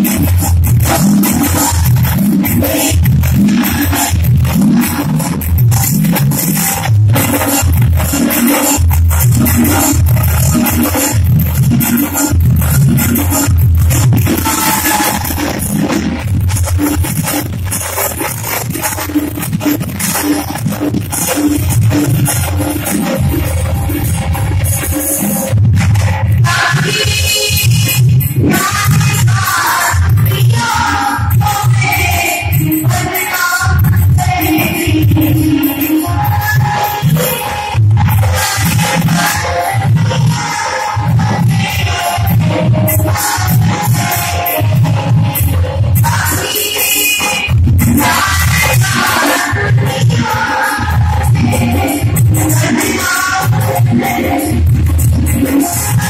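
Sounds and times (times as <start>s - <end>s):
live music through a pa: 0.0s - 56.0s
percussion strokes: 0.0s - 56.0s
rhythmic drumbeat: 0.0s - 56.0s
person singing: 46.0s - 54.7s.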